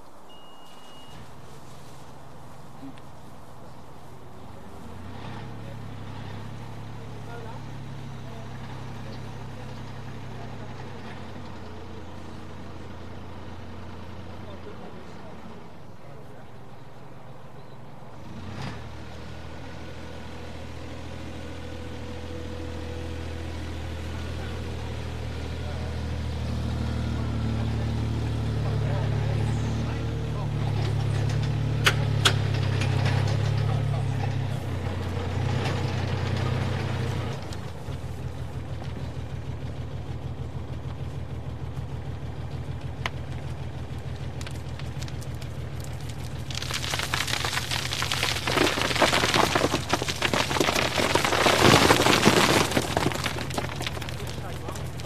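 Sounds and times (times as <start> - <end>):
diesel engine running: 20.2 - 55.0.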